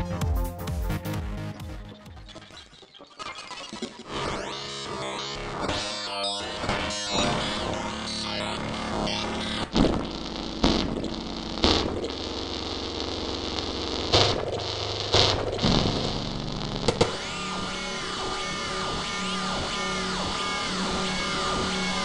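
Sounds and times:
synthesizer pitch sweeps: 0:00.0 - 0:12.4, 0:17.1 - 0:22.0
pulsing low drone: 0:04.6 - 0:22.0.

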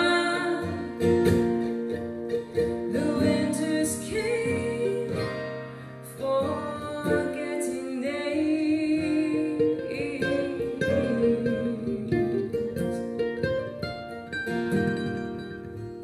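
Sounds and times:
acoustic guitar: 0:00.0 - 0:16.0
mandolin: 0:00.0 - 0:16.0.

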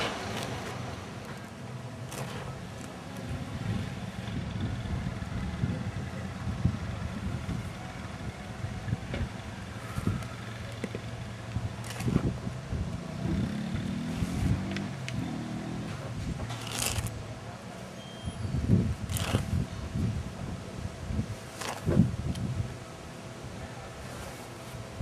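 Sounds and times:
vehicle engine running: 0:00.0 - 0:17.6.

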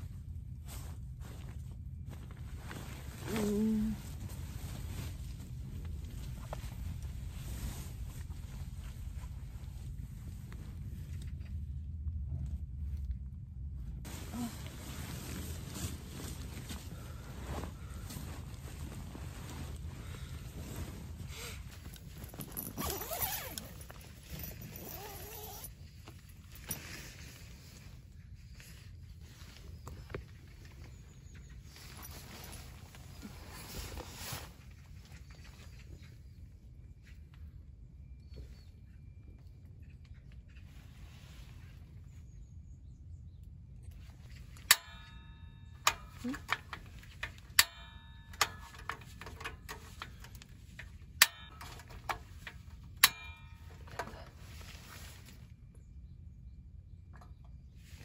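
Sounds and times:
sleeping bag and tent fabric rustling: 0:00.0 - 0:11.1, 0:14.0 - 0:36.0, 0:53.6 - 0:55.6
low steady rumble: 0:00.0 - 0:58.0
tent zipper opening: 0:21.2 - 0:25.7.

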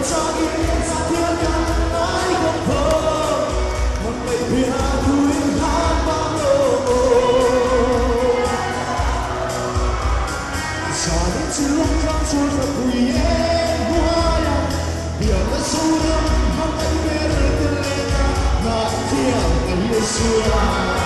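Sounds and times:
man singing into microphone: 0:00.0 - 0:09.4, 0:10.8 - 0:21.0
drum kit beat: 0:00.0 - 0:21.0
live band playing: 0:00.0 - 0:21.0.

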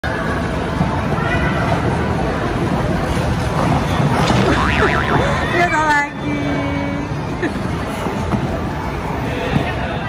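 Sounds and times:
indoor ice rink hubbub: 0:00.0 - 0:10.0.

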